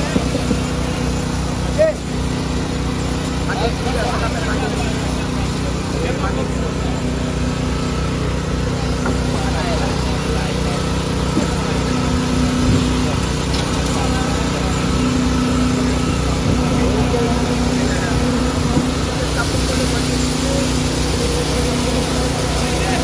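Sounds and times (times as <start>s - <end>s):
excavator diesel engine running: 0.0s - 23.0s.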